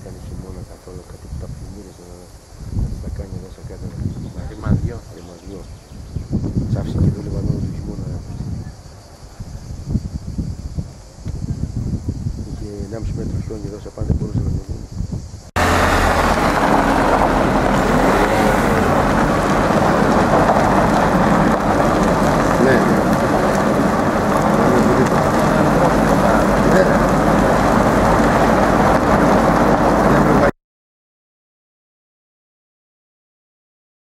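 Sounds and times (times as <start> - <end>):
tyres rumbling on gravel: 15.6 - 30.5
vehicle engine: 15.6 - 30.5.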